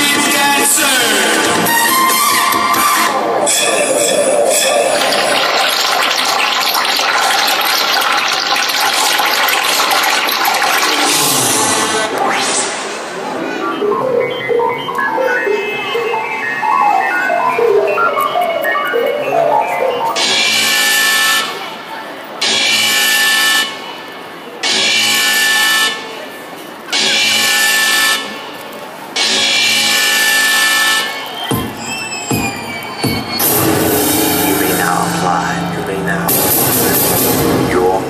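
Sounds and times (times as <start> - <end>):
dance music over speakers: 0.0 - 20.7, 31.1 - 38.0.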